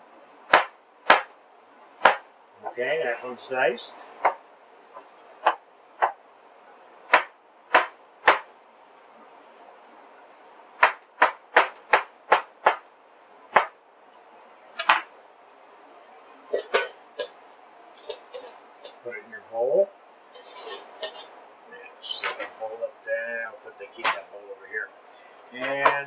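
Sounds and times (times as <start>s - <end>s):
knife chopping on cutting board: 0.5s - 1.3s, 2.0s - 2.2s, 7.1s - 8.5s, 10.8s - 12.8s, 13.5s - 13.7s.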